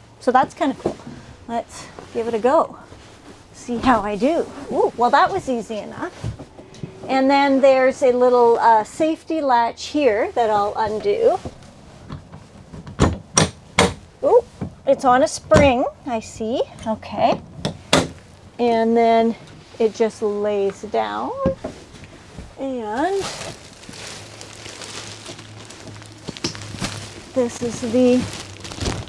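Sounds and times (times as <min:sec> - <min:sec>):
low steady hum: 0:00.0 - 0:29.0
plastic wrapping crinkling: 0:21.9 - 0:29.0.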